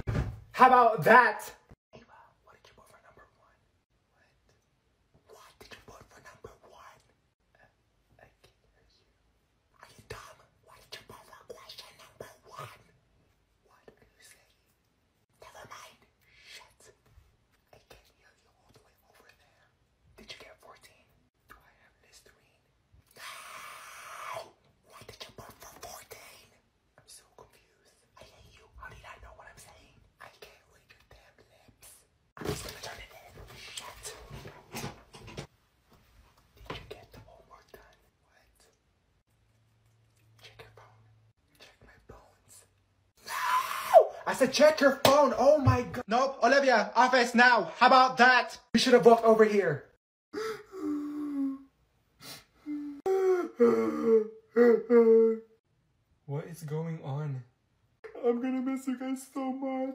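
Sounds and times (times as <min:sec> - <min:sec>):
person whispering: 0:02.0 - 0:04.6, 0:05.2 - 0:09.1, 0:09.8 - 0:12.9, 0:13.6 - 0:14.7, 0:15.4 - 0:34.5, 0:36.6 - 0:38.8, 0:40.4 - 0:42.8, 0:58.0 - 0:59.9.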